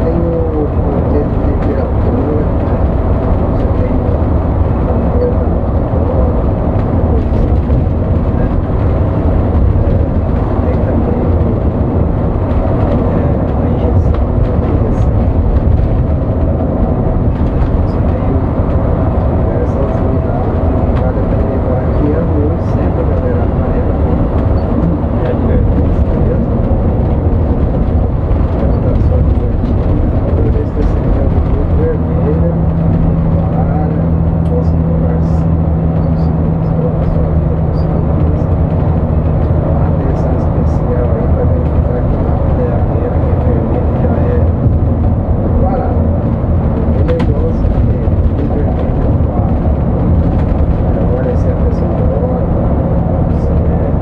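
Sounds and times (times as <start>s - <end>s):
bus engine drone: 0.0s - 54.0s
road rumble: 0.0s - 54.0s
steady low hum: 0.0s - 54.0s.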